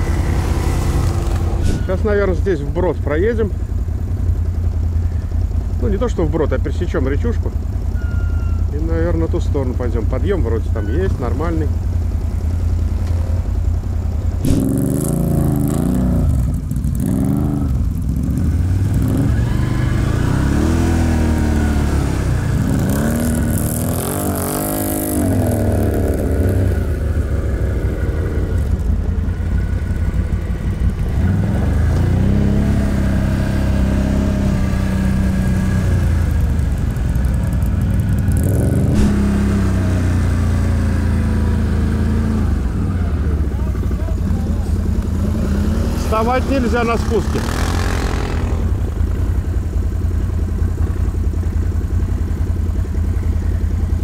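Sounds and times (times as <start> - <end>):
atv engine revving: 0.0 - 54.0.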